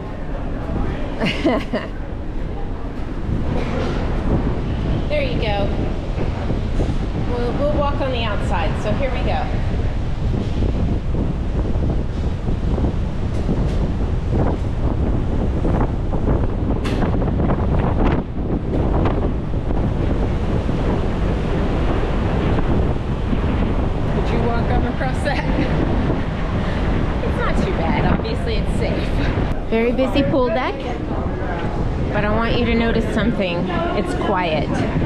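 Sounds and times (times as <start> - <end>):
wind buffeting microphone: 0.0 - 35.0
churning sea water: 2.0 - 35.0.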